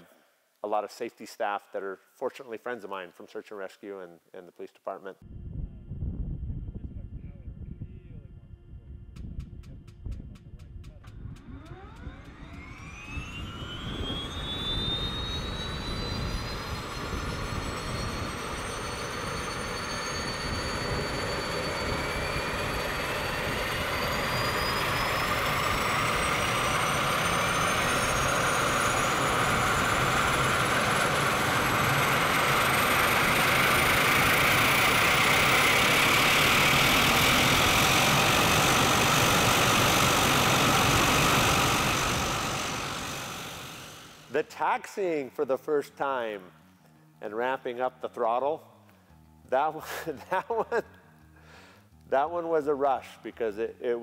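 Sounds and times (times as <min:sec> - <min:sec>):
turboprop engine spooling up: 0:05.3 - 0:44.5.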